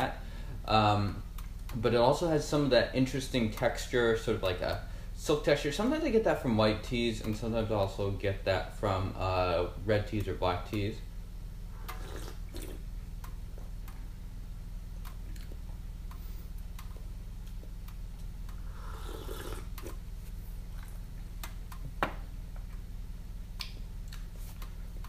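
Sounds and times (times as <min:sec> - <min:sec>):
steady low hum: 0:00.0 - 0:25.0
sipping from a teacup: 0:11.8 - 0:12.8, 0:18.8 - 0:20.0.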